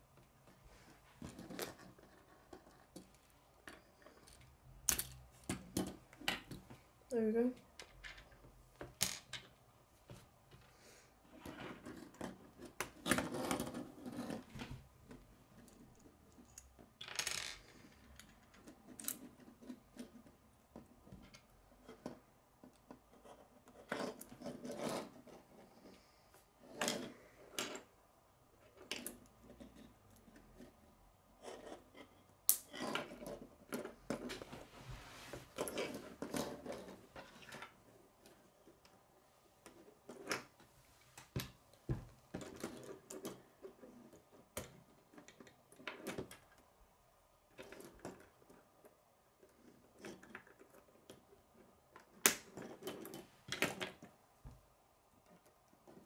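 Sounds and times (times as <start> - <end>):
parts rattling on wooden table: 7.7 - 9.6, 16.4 - 20.2.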